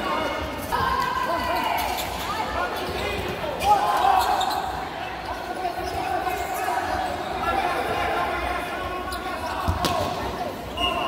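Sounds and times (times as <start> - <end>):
sneakers squeaking: 1.5 - 7.6, 9.0 - 11.0.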